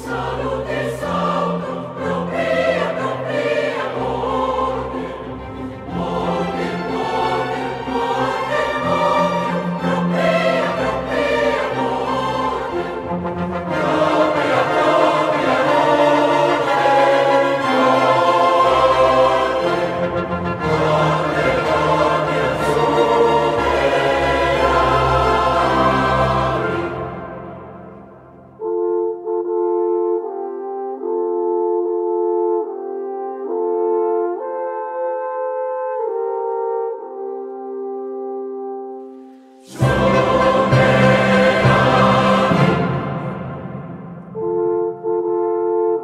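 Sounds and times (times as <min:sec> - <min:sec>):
choir singing with orchestra: 0:00.0 - 0:46.0
held brass chord: 0:06.2 - 0:32.0.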